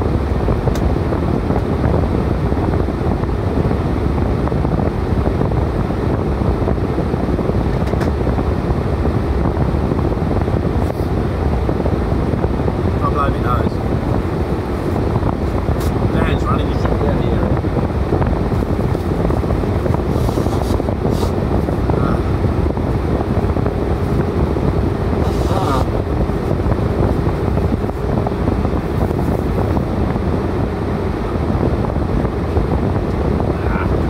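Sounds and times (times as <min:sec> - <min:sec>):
wind noise on microphone: 0:00.0 - 0:34.0.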